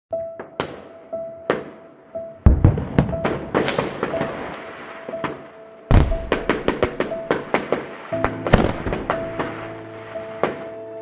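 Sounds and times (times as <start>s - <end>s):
background music: 0.1s - 11.0s
fireworks booming and crackling: 2.4s - 10.7s.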